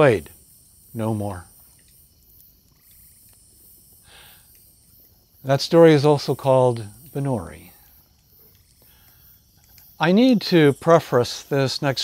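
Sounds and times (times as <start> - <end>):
crickets chirping: 0.0 - 12.0.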